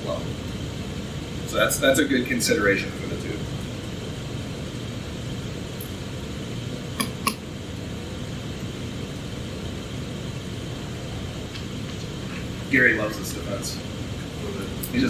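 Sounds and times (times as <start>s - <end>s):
ventilation hum: 0.0s - 15.0s.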